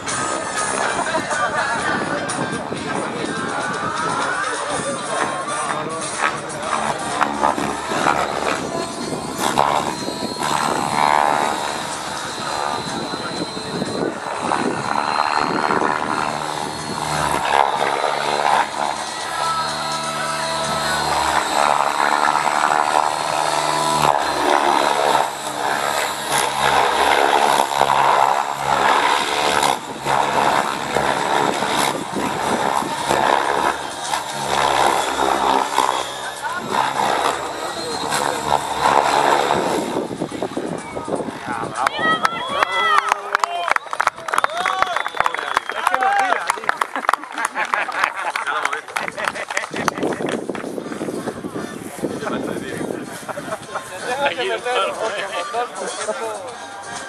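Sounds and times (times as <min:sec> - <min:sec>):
model helicopter rotor whirring: 0:00.0 - 0:43.2, 0:43.9 - 0:57.0
music: 0:00.0 - 0:43.3, 0:49.7 - 0:57.0.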